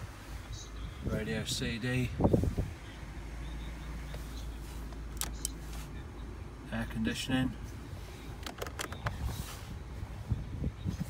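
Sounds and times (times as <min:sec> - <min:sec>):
car engine idling: 0:00.0 - 0:11.0
rumble of handling: 0:07.6 - 0:11.0.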